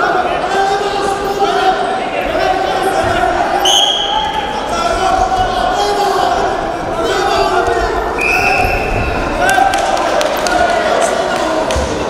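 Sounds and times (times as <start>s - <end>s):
raised voices: 0.0s - 12.0s
referee's whistle blast: 3.6s - 4.2s.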